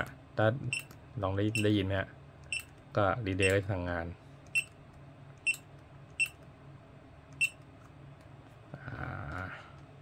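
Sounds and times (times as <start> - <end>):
touchscreen key-press beeps: 2.4 - 2.7, 4.5 - 4.8, 5.4 - 6.4, 7.4 - 7.6.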